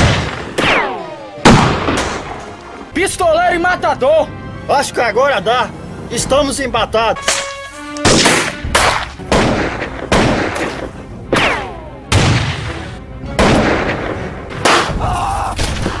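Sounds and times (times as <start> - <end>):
gunshots: 0.0 - 2.4, 7.2 - 15.0.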